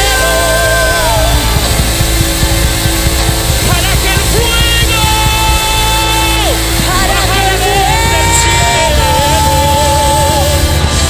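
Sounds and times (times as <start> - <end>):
long held sliding note: 0.0 - 11.0
worship band playing up-tempo music: 0.0 - 11.0.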